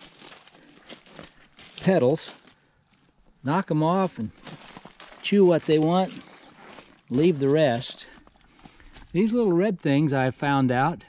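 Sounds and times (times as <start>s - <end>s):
footsteps on gravel: 0.0s - 10.1s
man talking: 1.7s - 2.4s, 3.4s - 4.5s, 5.2s - 6.4s, 7.1s - 8.2s, 9.1s - 11.0s.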